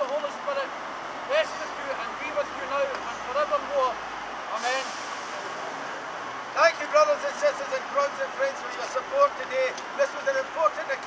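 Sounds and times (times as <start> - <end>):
street traffic noise: 0.0 - 11.0
air brake hiss: 4.5 - 5.9.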